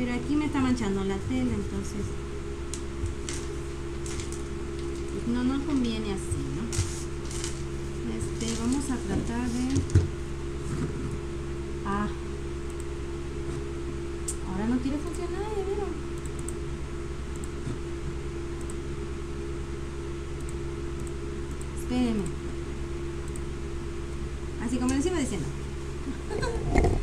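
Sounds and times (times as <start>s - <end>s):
electric fan humming: 0.0s - 27.0s.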